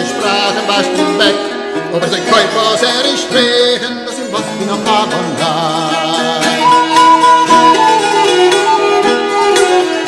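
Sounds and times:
held melody notes: 6.5 - 10.0.

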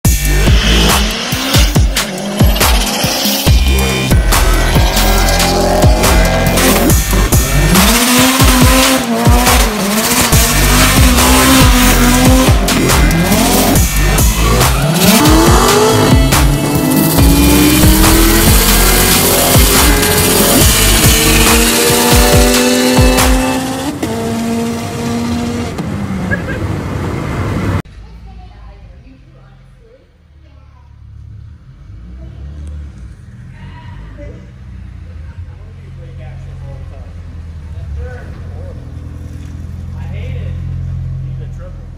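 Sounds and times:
music with a driving beat: 0.0 - 24.0
car engines revving: 0.1 - 29.8, 30.4 - 41.9.

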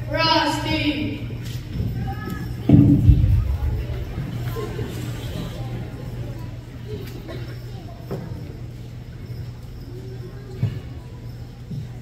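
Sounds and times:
steady low hum: 0.0 - 7.8
faint audience murmur: 0.0 - 12.0.

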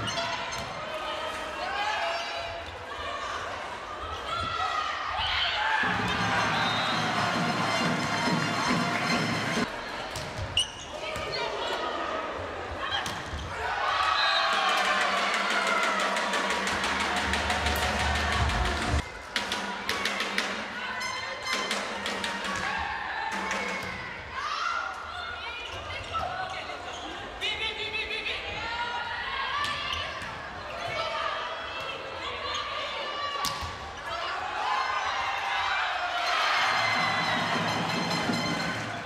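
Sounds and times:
crowd cheering and chanting: 1.0 - 10.4, 13.6 - 21.0, 21.6 - 24.7, 34.1 - 39.0
music in hall: 5.8 - 9.7, 36.5 - 39.0.

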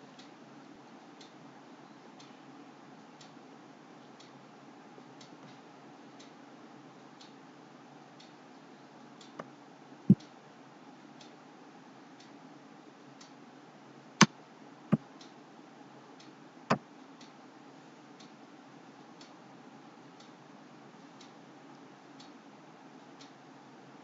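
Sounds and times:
low steady room hum: 0.0 - 24.0.

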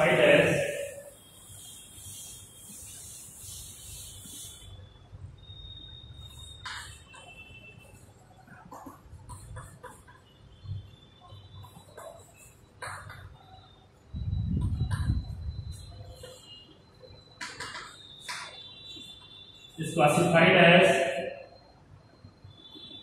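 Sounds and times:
chalk tapping and scraping: 0.0 - 4.8, 6.2 - 10.3, 11.6 - 13.5, 14.6 - 16.6, 17.4 - 19.3
duster rubbing on chalkboard: 0.0 - 4.8
chalk squeaks: 0.0 - 5.0, 5.8 - 10.3, 11.2 - 13.8, 15.7 - 19.2.

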